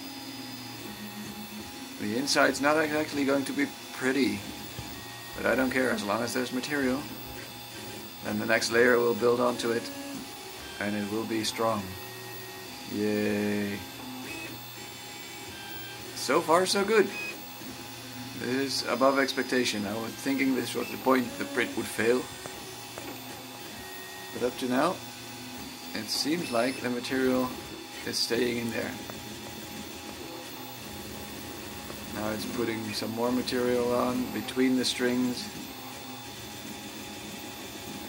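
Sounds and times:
stepper motor whine: 0.0 - 38.0.

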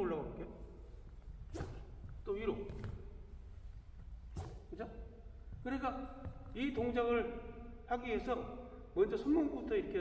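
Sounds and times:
racket swishing through air: 0.9 - 3.2, 4.0 - 4.8.

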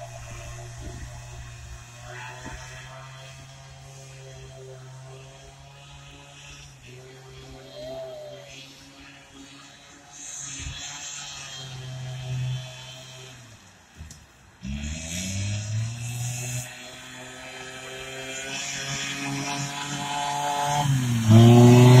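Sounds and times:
snowmobile engine running: 0.0 - 22.0.

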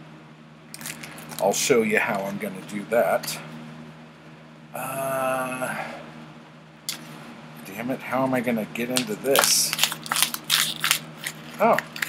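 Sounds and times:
plastic blister pack crackling: 0.8 - 1.6, 8.9 - 12.0
paper card ripping: 8.9 - 12.0.

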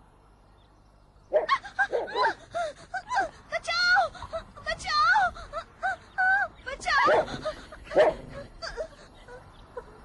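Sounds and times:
dog barking: 1.3 - 2.4, 7.9 - 8.3.

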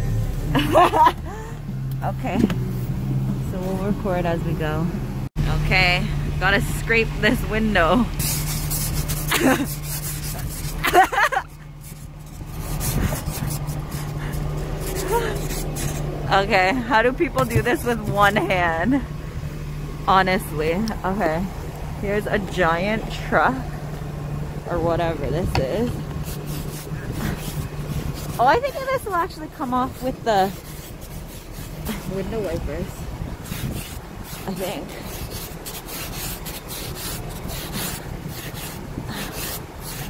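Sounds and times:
steady low hum: 0.0 - 40.0
truck engine idling: 0.0 - 40.0
ice scraper rasping on glass: 8.2 - 16.1, 17.4 - 18.4, 26.2 - 32.4, 33.4 - 40.0.

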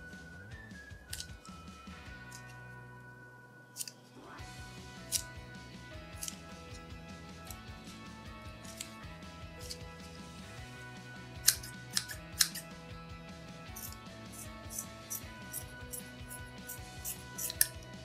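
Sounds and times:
background music: 0.0 - 18.0
scissors snipping rubbery toy: 1.1 - 1.6, 2.2 - 2.6, 3.8 - 4.0, 5.0 - 5.4, 6.0 - 7.7, 8.6 - 10.2, 11.4 - 12.8, 13.7 - 18.0.

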